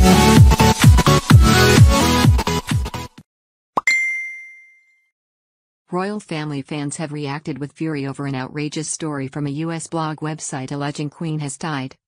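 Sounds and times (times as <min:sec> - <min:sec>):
bell-like ding: 0:03.8 - 0:05.1.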